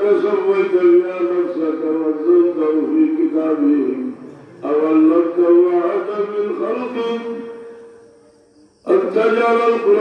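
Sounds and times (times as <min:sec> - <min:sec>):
man chanting: 0:00.0 - 0:07.7, 0:08.8 - 0:10.0.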